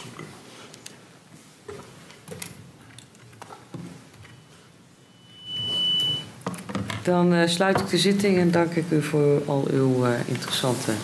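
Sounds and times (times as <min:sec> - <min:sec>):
high-pitched electronic beep: 0:04.4 - 0:06.3.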